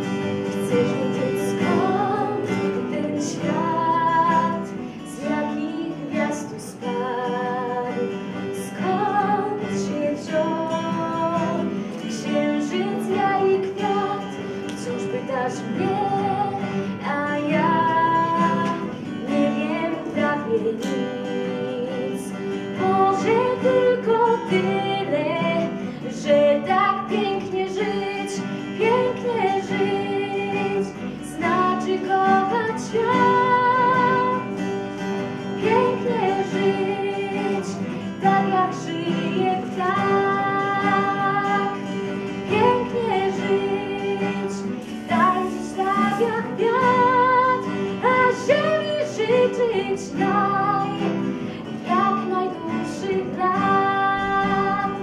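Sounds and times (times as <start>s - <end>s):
acoustic guitar: 0.0s - 55.0s
woman singing: 0.0s - 55.0s.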